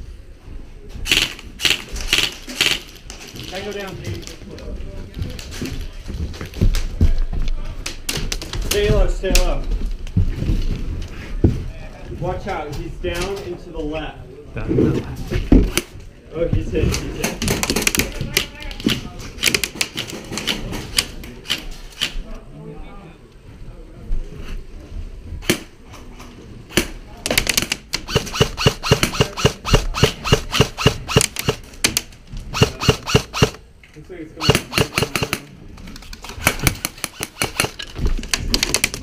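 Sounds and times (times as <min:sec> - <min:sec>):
airsoft guns firing: 0:01.0 - 0:03.0, 0:26.7 - 0:33.6, 0:34.4 - 0:35.5, 0:36.4 - 0:37.9.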